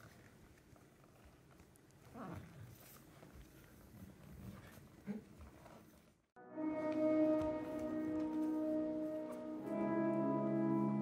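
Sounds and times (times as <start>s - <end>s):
barefoot dancers moving on floor: 3.0s - 10.3s.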